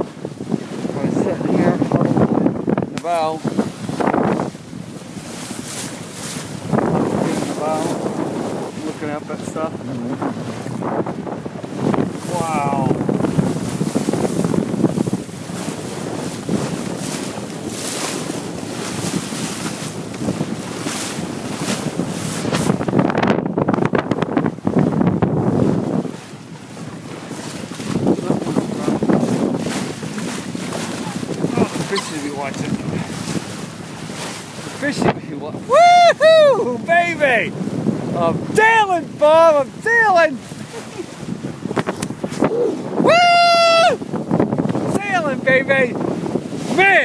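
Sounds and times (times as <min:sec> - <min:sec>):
water rushing along hull: 0:00.0 - 0:47.0
wind buffeting microphone: 0:00.0 - 0:47.0.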